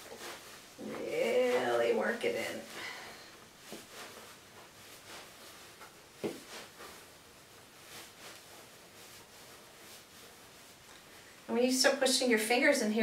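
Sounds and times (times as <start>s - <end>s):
fabric and stuffing rustling: 0.0s - 13.0s.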